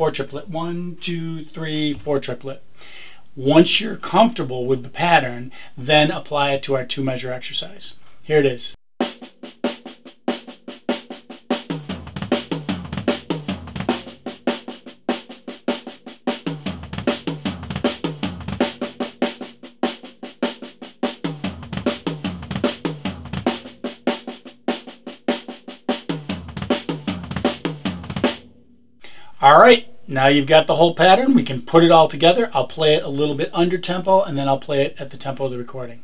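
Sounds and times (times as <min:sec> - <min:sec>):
snare drum triplets: 0:09.0 - 0:28.4
double-pedal bass drum strokes: 0:11.6 - 0:14.6, 0:16.4 - 0:19.5, 0:21.2 - 0:24.4, 0:26.0 - 0:28.4.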